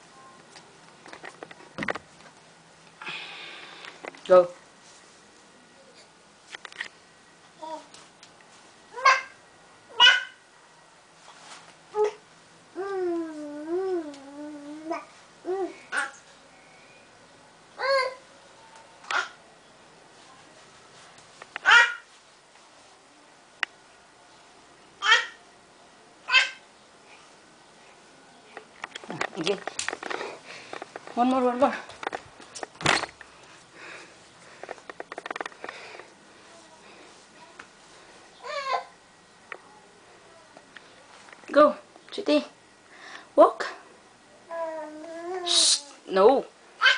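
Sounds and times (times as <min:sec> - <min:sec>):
person breathing close to microphone: 0:03.0 - 0:04.0.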